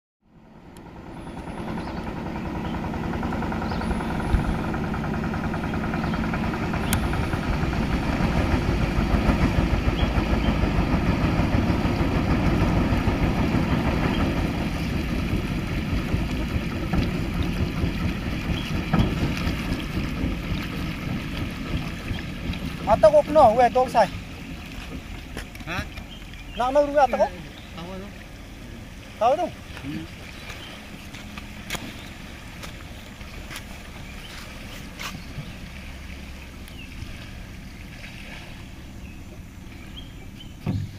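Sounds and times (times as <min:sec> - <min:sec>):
motorboat engine running: 0:00.2 - 0:40.9.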